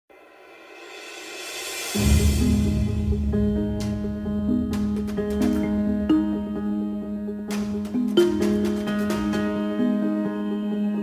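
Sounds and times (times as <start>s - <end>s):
reversed cymbal swell: 0.2s - 3.3s
low musical notes: 2.0s - 11.0s.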